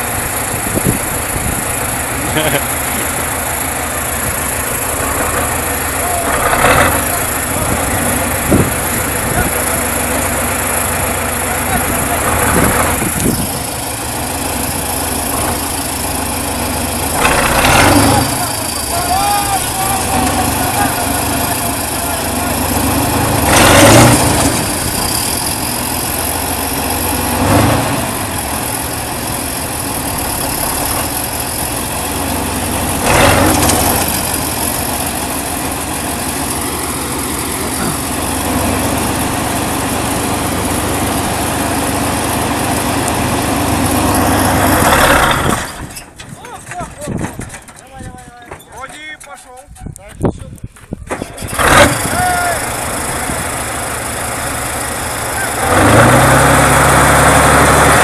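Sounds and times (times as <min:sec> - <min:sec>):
tractor diesel engine running: 0:00.0 - 0:58.0.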